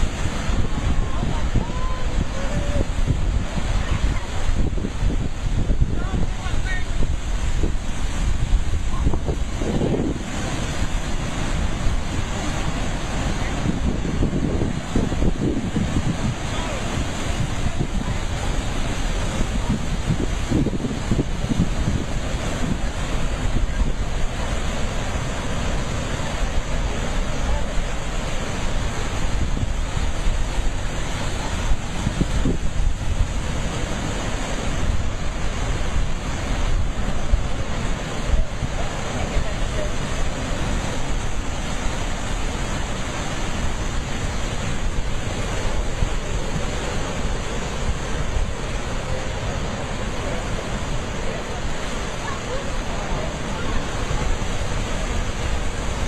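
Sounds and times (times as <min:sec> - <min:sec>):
sea surf breaking against rocks: 0:00.0 - 0:56.0
wind buffeting microphone: 0:00.0 - 0:56.0.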